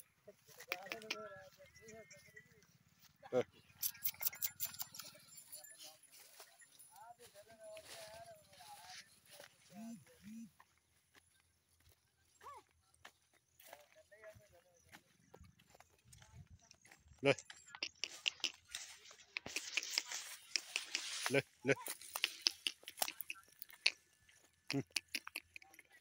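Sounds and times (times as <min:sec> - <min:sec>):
man calling out: 0:09.7 - 0:10.4.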